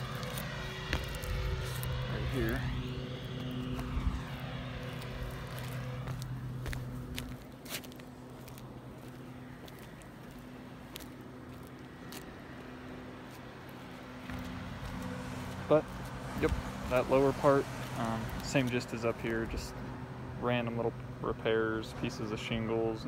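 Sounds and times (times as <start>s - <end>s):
low machine hum: 0.0s - 17.3s.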